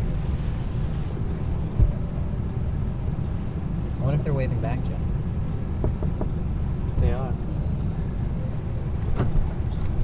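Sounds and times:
vehicle rumble from inside cabin: 0:00.0 - 0:10.0.

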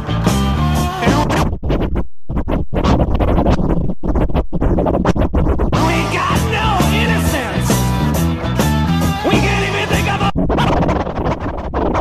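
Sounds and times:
dj scratching: 0:00.0 - 0:12.0
electronic music: 0:05.0 - 0:10.3.

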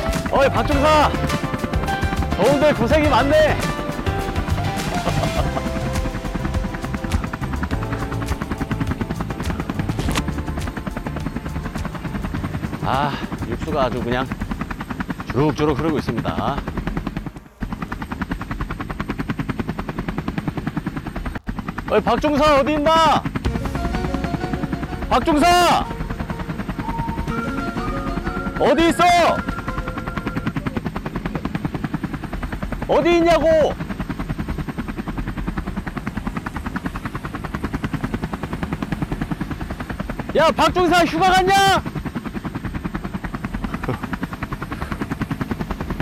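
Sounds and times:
rapid chopping pulse: 0:00.0 - 0:15.4
helicopter rotor chopping: 0:00.0 - 0:46.0.

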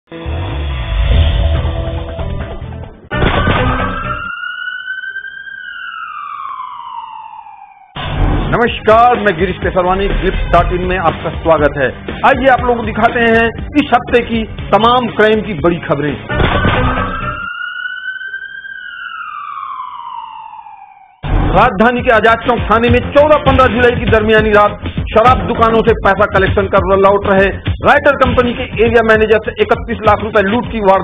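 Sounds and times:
siren wail: 0:03.1 - 0:10.8, 0:15.9 - 0:24.0
backing music: 0:08.0 - 0:17.5, 0:21.2 - 0:31.0.

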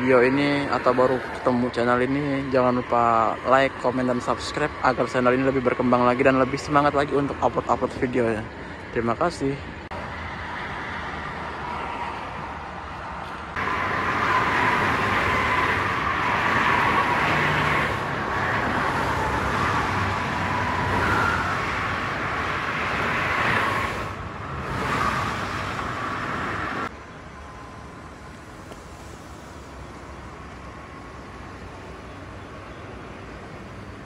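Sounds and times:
tyres hissing on road: 0:13.6 - 0:34.0.

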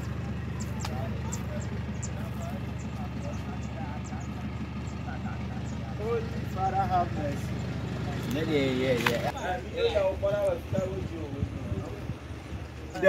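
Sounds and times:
engine idling: 0:00.0 - 0:13.0
people talking: 0:00.0 - 0:13.0.

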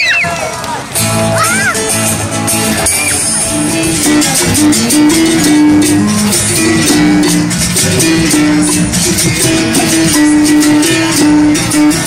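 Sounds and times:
berimbaus playing: 0:01.0 - 0:12.0.

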